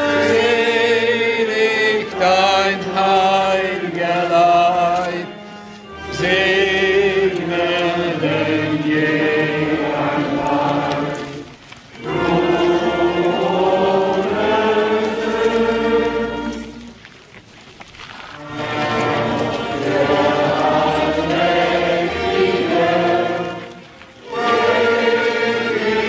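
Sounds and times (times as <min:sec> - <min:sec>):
choir singing: 0:00.0 - 0:16.9, 0:18.4 - 0:26.0.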